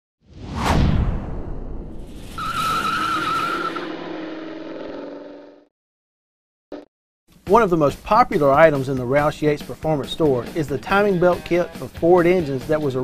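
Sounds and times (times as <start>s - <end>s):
wavering high squeal: 2.2s - 4.9s.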